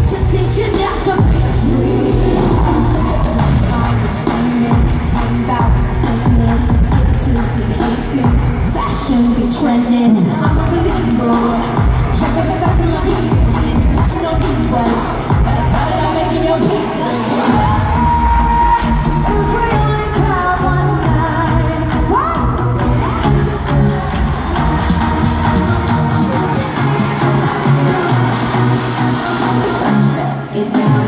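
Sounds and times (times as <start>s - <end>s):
crowd noise: 0.0s - 31.0s
female vocal group singing: 0.0s - 31.0s
live pop music: 0.0s - 31.0s.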